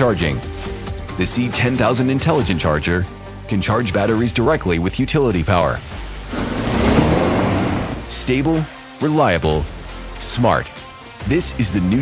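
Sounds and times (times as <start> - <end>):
loud rushing whoosh: 6.3 - 8.2.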